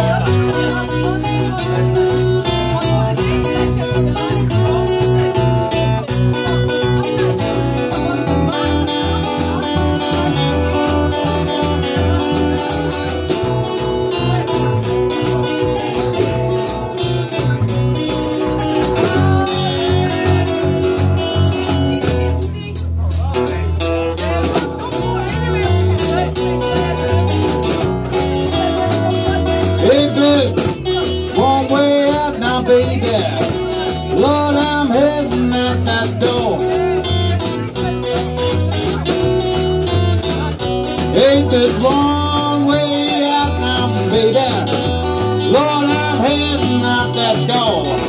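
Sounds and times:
acoustic guitar strumming: 0.0 - 48.0
blues band playing: 0.0 - 48.0.

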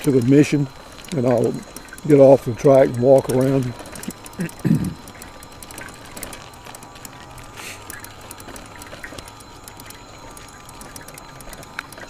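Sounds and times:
faint steady whine: 0.0 - 12.0
trike clicks and rattles: 0.0 - 12.0.

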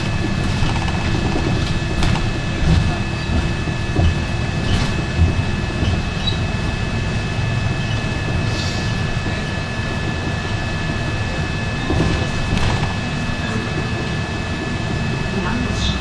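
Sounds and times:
bus engine and tyres rumbling: 0.0 - 16.0.

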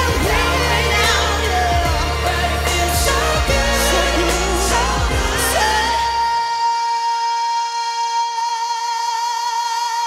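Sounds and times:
band backing: 0.0 - 7.5.

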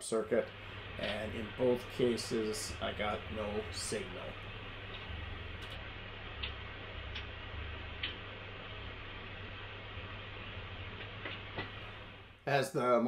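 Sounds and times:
low steady hum: 0.0 - 13.0
oscilloscope knobs clicking: 0.5 - 12.2.

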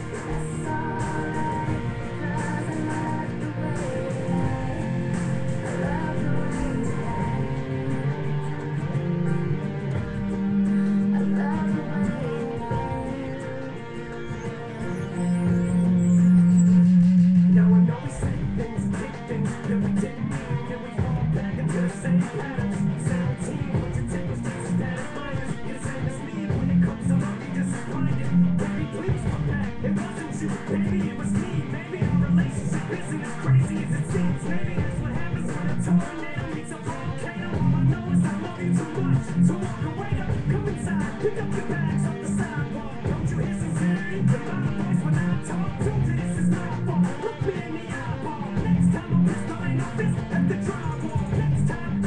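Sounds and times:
guitar strumming chords: 0.0 - 52.0.

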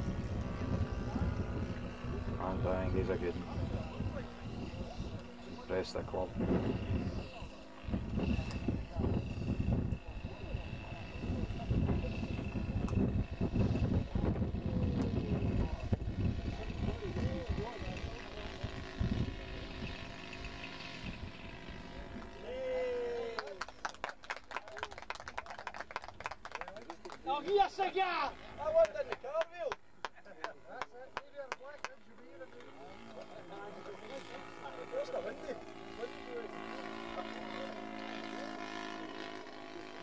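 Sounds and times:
model plane engine whine: 0.0 - 29.4, 31.9 - 40.0
people talking indistinctly: 0.2 - 23.6, 26.5 - 40.0.

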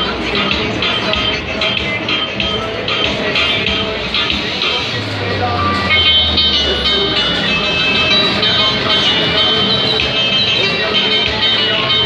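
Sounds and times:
crowd voices: 0.0 - 12.0
loud fairground music: 0.0 - 12.0.

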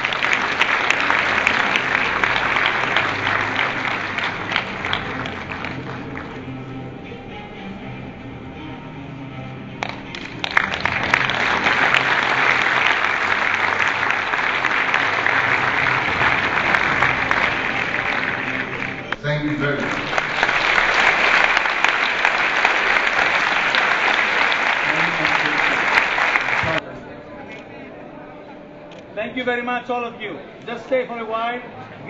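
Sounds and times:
audience applauding: 0.0 - 6.7, 9.8 - 26.8
background music: 0.0 - 32.0.

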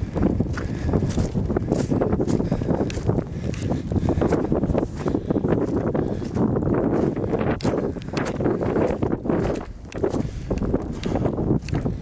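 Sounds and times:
wind buffeting microphone: 0.0 - 12.0
footsteps rustling through grass: 0.1 - 12.0.

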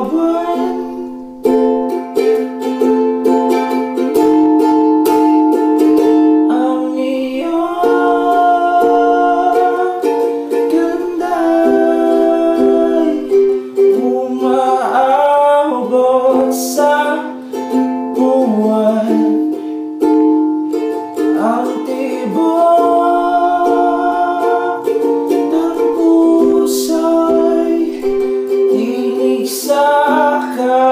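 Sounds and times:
ukulele strumming: 0.0 - 30.9.

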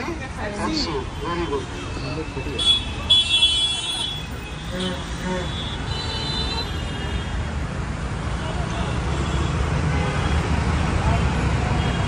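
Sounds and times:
road traffic and engine rumble: 0.0 - 12.0.

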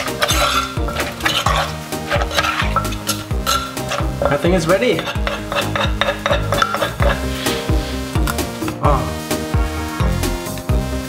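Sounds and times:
spoon scraping in mortar: 0.0 - 7.7
background music with beat: 0.0 - 11.0.

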